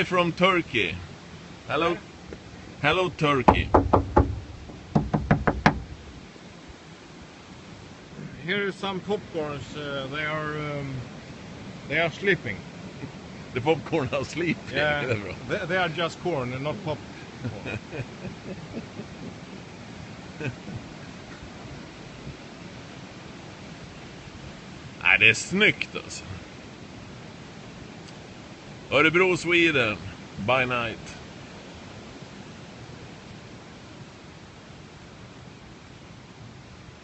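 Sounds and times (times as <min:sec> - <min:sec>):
faint hiss: 0:00.0 - 0:37.0
fingers knocking on phone: 0:03.5 - 0:06.0.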